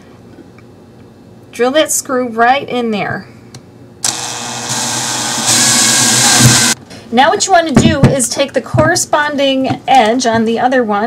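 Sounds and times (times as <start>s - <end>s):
cordless drill driving screw: 4.0s - 6.8s.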